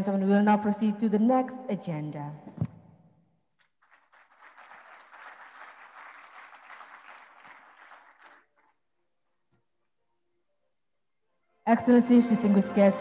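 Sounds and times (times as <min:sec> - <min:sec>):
audience applause: 0:03.8 - 0:08.8.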